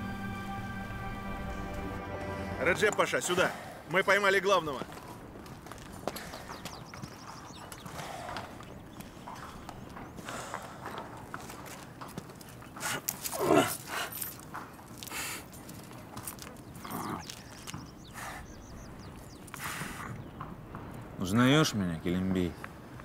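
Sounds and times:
horse hooves on stone: 4.5 - 18.4.

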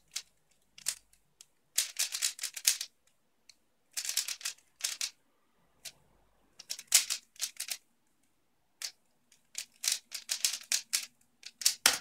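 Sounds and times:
plastic puzzle cube clicking: 0.1 - 5.2, 6.6 - 7.8, 8.8 - 12.0.

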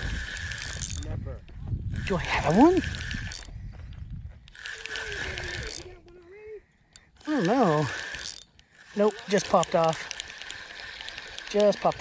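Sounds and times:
fishing reel whirring: 0.0 - 1.2, 1.9 - 6.2, 6.8 - 12.0.

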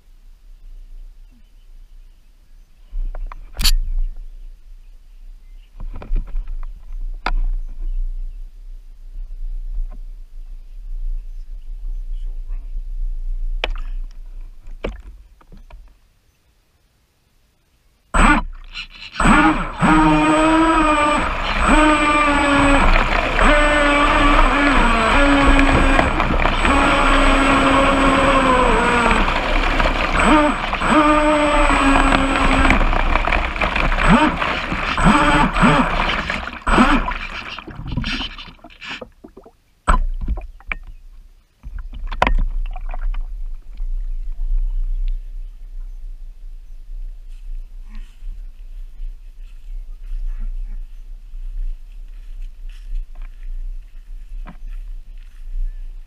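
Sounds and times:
rc boat electric motor whining: 18.2 - 39.0
knocks and splashes: 18.2 - 41.0, 41.6 - 43.6.

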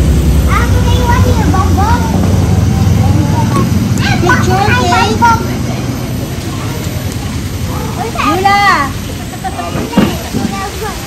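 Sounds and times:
loud low rumble: 0.0 - 8.1
children calling: 0.0 - 11.0.

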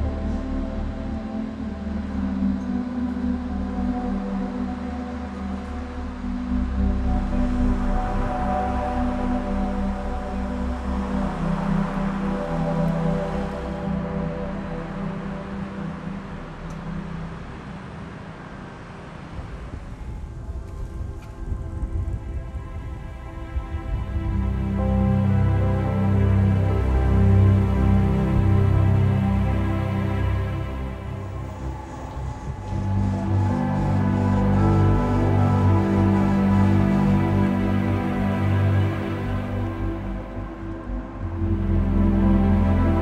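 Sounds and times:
slow ambient music: 0.0 - 43.0.

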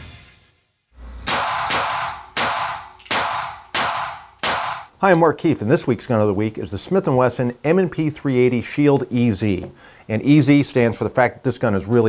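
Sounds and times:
music: 0.0 - 0.9
pistol shots echoing: 1.3 - 4.9.

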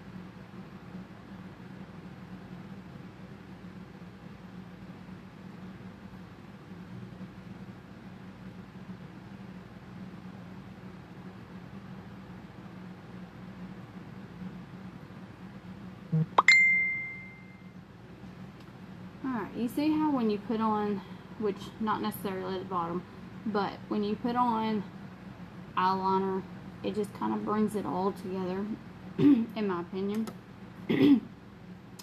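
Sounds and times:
faint room hum: 0.0 - 32.0
bright ding: 16.4 - 17.7.

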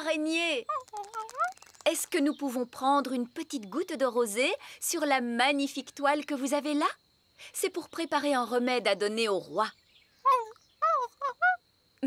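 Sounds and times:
cartoon spider high calls: 0.7 - 2.0, 10.3 - 11.6.

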